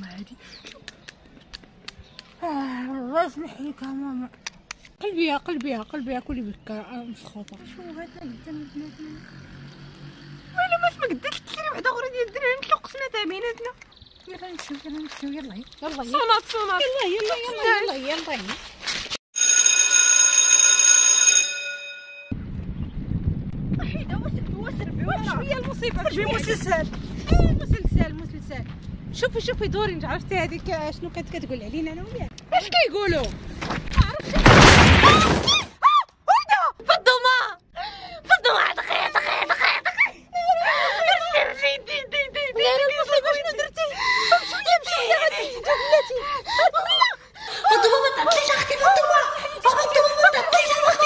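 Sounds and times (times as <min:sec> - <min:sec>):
bell ringing: 0:19.4 - 0:22.4.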